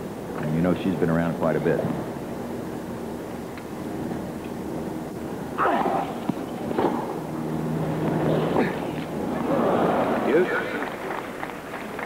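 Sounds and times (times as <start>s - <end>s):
crowd noise: 5.4s - 12.0s
racket hitting ball: 5.7s - 7.2s.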